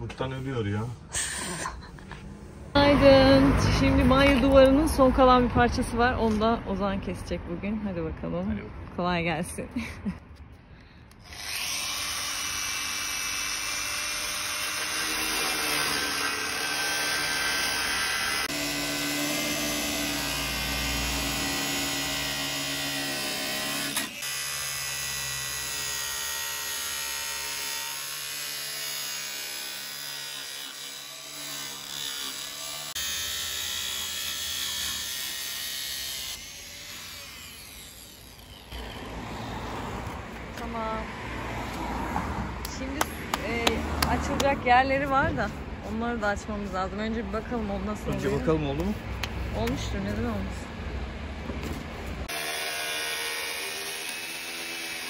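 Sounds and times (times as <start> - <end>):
angle grinder cutting panel: 11.2 - 40.2, 52.2 - 55.0.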